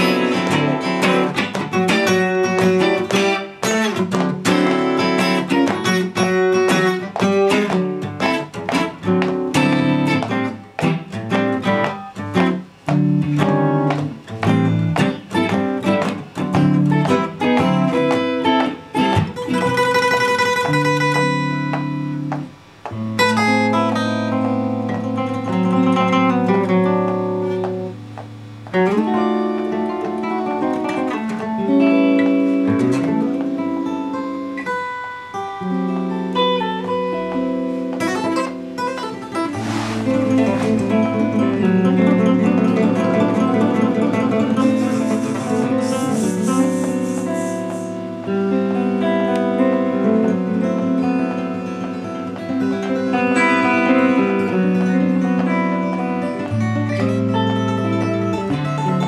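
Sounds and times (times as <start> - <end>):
acoustic guitar: 0.0 - 59.0
electric guitar: 0.0 - 59.0.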